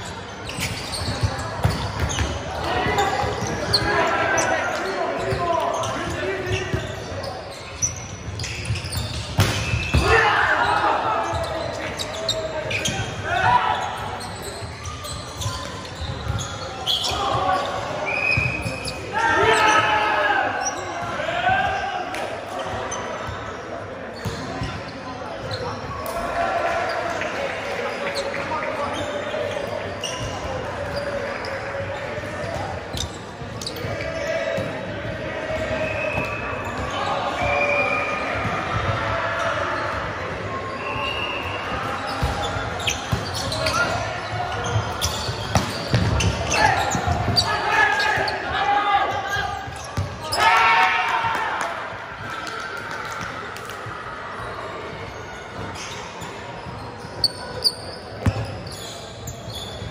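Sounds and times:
players shouting: 0:02.5 - 0:07.0, 0:09.8 - 0:14.2, 0:16.4 - 0:23.0, 0:33.7 - 0:54.5
volleyball hits: 0:44.6 - 0:47.5.

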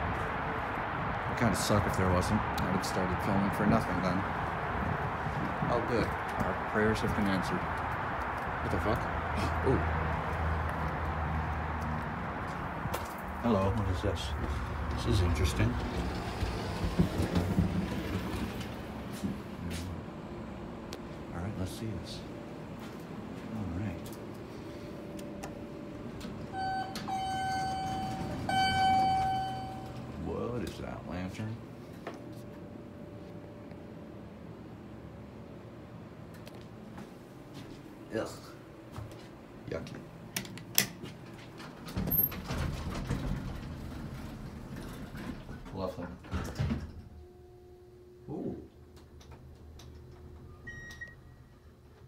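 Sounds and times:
elevator electronic tone: 0:26.4 - 0:30.2, 0:50.4 - 0:51.7.

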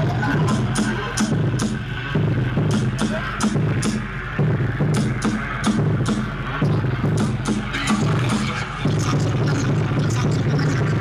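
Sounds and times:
battle music with heavy bass: 0:00.0 - 0:11.0.

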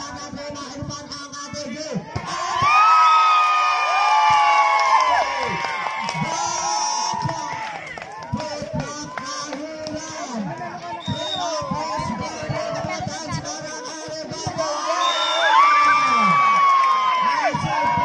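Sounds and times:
crowd cheering and shouting: 0:01.4 - 0:18.0
crowd chatter: 0:06.2 - 0:15.6.

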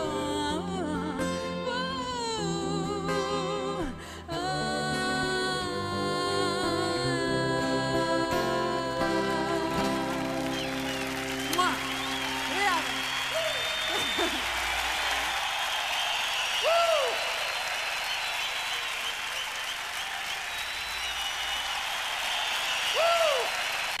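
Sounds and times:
audience applauding: 0:09.5 - 0:24.0
crowd whooping: 0:09.8 - 0:24.0
whistles from crowd: 0:10.3 - 0:24.0.

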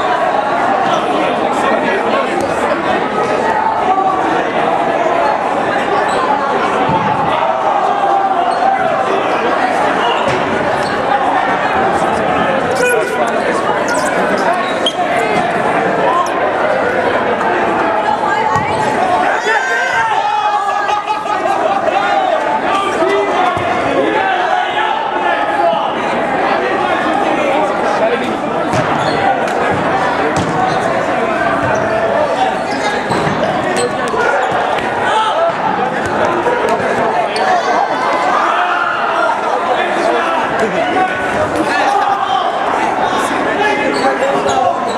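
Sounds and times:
players calling and chattering: 0:00.0 - 0:44.9
balls bouncing on hardwood floor: 0:29.7 - 0:30.6.

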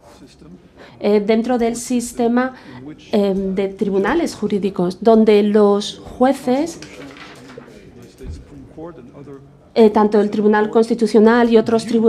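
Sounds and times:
faint man speaking: 0:00.0 - 0:01.1, 0:02.5 - 0:04.2
interpreter speaking: 0:00.0 - 0:12.0.

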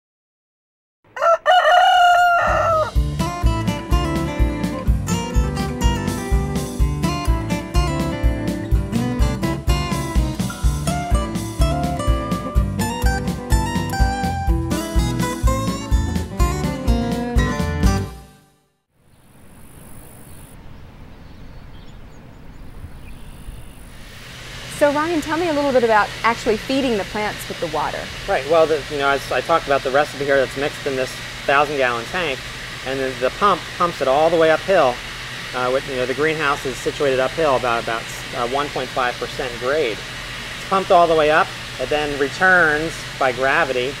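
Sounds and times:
rooster crowing: 0:01.1 - 0:03.0
acoustic guitar music: 0:02.9 - 0:18.5.

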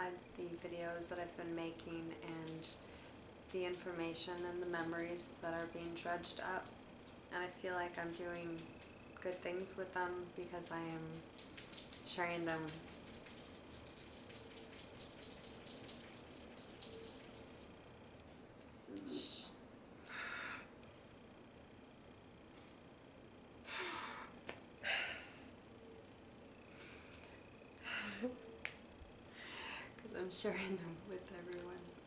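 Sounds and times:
thin high ring: 0:01.8 - 0:17.8
small metal pieces jingling: 0:02.3 - 0:07.3, 0:08.0 - 0:09.7, 0:10.5 - 0:17.7
woman breathing softly: 0:20.0 - 0:20.7, 0:26.6 - 0:28.3, 0:29.3 - 0:30.0.

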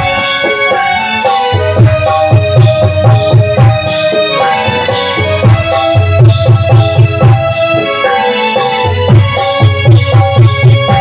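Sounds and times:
hand drum rhythm: 0:00.0 - 0:11.0
keyboard melody: 0:00.0 - 0:11.0.

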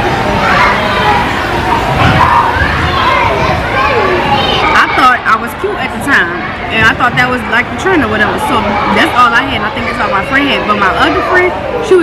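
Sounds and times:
echoing babble of many voices: 0:00.0 - 0:12.0.

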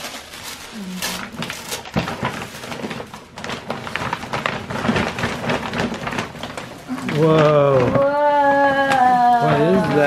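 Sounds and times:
wrapping paper rustling and tearing: 0:00.0 - 0:10.0.

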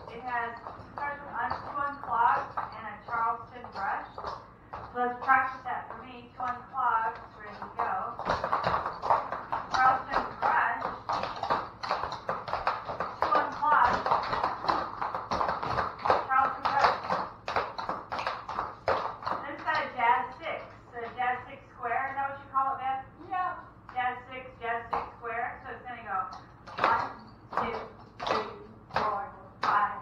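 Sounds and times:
women talking: 0:00.0 - 0:04.2, 0:04.9 - 0:08.3, 0:09.7 - 0:11.0, 0:13.2 - 0:15.0, 0:16.1 - 0:17.2, 0:19.4 - 0:30.0
tap shoes clicking on wooden floor: 0:00.0 - 0:21.2, 0:26.2 - 0:30.0.

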